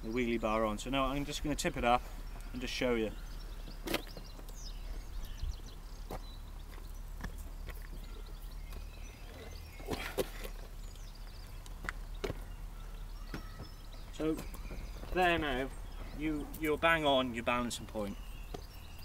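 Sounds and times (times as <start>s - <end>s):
birds chirping: 0.0s - 19.0s
knocks and clunks of vehicle: 11.3s - 16.2s.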